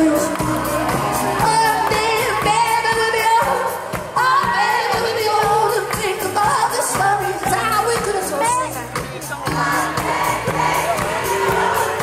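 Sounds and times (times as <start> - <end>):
person singing: 0.0 - 3.6
drum beat: 0.0 - 12.0.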